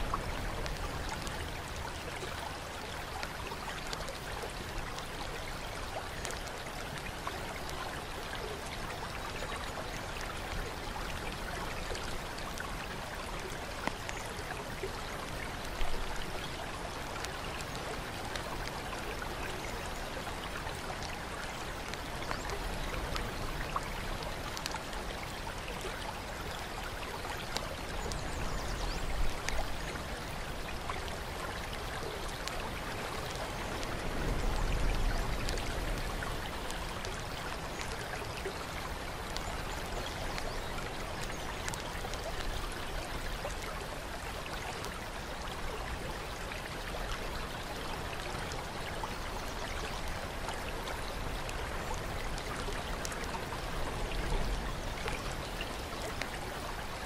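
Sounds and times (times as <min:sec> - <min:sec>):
water dripping: 0:00.0 - 0:57.0
water trickling and splashing: 0:00.0 - 0:57.0.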